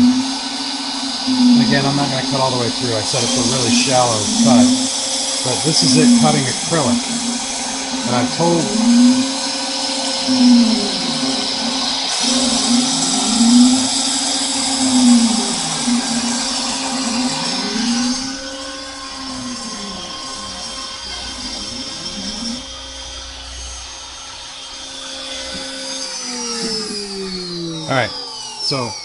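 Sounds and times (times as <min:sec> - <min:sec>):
router spindle whine: 0:00.0 - 0:29.0.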